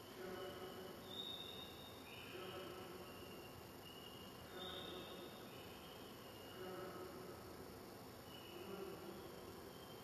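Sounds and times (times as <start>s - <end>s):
faint buzzing tones from speakers: 0.0s - 10.0s.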